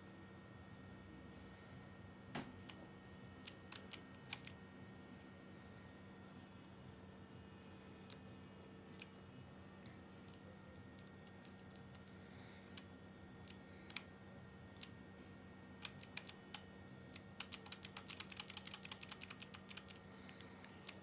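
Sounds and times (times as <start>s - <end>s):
keyboard typing clicks: 3.4s - 4.6s, 12.8s - 14.1s, 15.8s - 21.0s.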